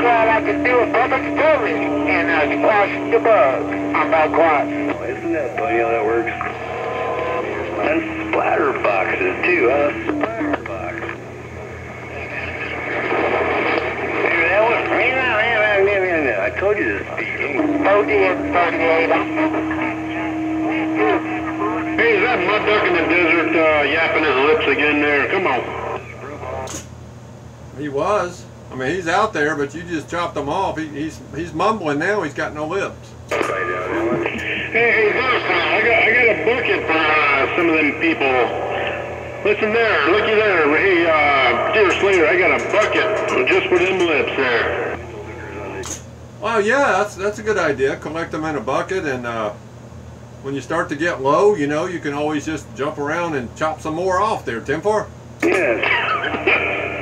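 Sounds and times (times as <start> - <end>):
faint warbling radio voices: 0.0 - 26.8, 33.3 - 46.0, 55.4 - 57.0
radio static: 0.0 - 26.8, 33.3 - 46.0, 55.4 - 57.0
steady low hum: 0.0 - 57.0.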